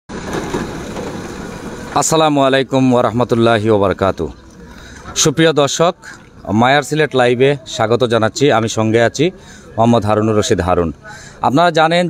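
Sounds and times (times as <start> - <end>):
street noise low rumble: 0.1 - 12.0.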